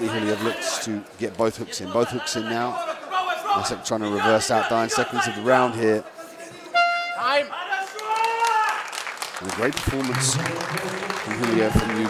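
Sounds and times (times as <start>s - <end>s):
horn short note: 6.8s - 7.4s.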